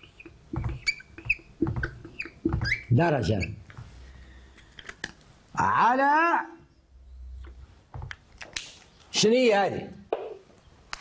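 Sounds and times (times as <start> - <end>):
marker squeaking on whiteboard: 0.0 - 4.7.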